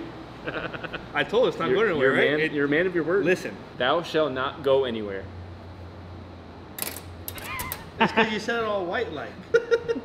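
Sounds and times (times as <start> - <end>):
metal part rattling: 6.8 - 7.9.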